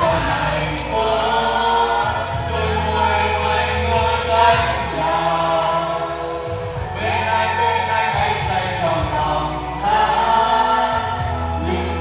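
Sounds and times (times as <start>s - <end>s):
group singing into microphones: 0.0s - 12.0s
pop backing track with bass line: 0.0s - 12.0s.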